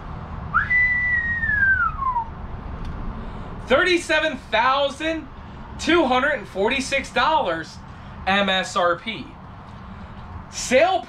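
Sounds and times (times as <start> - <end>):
man whistling a sliding note: 0.5 - 2.3.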